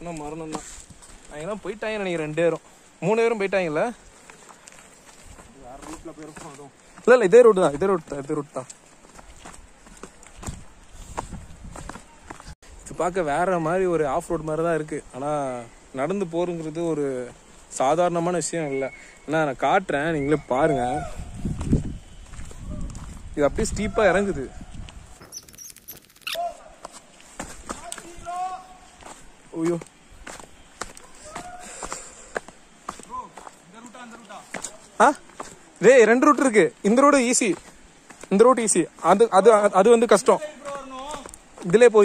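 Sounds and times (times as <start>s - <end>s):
footsteps on rocky dirt trail: 0.0s - 13.1s, 20.6s - 42.0s.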